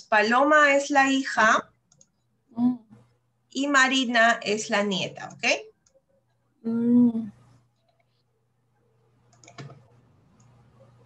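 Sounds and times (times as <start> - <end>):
faint low hum: 0.0 - 11.0
computer mouse clicks: 1.8 - 2.2, 9.2 - 11.0.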